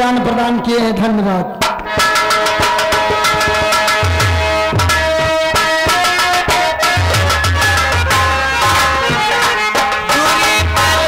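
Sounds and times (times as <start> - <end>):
hand drum strokes: 1.6 - 11.0.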